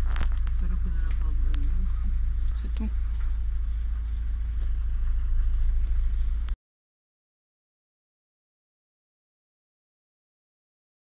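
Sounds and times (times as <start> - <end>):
steady low rumble: 0.0 - 6.6.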